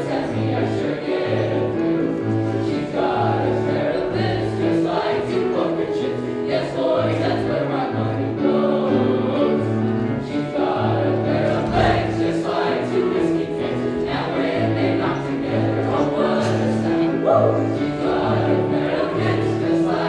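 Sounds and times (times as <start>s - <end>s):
boys' choir singing: 0.0s - 20.0s.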